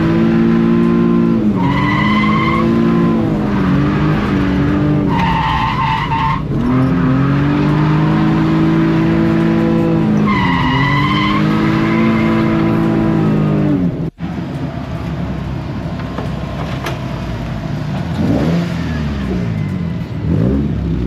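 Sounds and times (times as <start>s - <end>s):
car engine at high revs: 0.0s - 21.0s
quieter car engine: 0.0s - 21.0s
tyre squeal: 1.5s - 8.2s, 10.0s - 12.9s.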